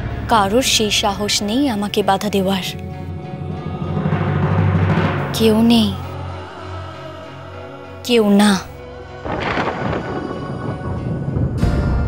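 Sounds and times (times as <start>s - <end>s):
low rumble: 0.0s - 7.4s, 9.2s - 12.0s
dramatic music: 0.0s - 12.0s
thunder-like crash: 2.8s - 6.7s, 9.2s - 12.0s.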